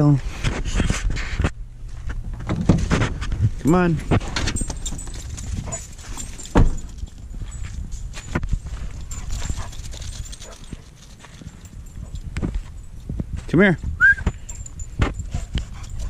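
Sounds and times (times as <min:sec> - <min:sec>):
paw steps crunching on gravel: 0:02.8 - 0:13.6, 0:14.2 - 0:16.0
loud thud: 0:06.5 - 0:06.9.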